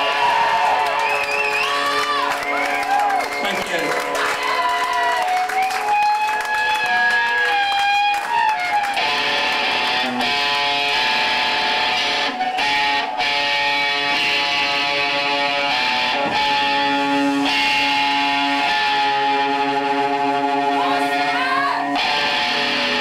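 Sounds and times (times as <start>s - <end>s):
distorted electric guitar chords: 5.4s - 23.0s.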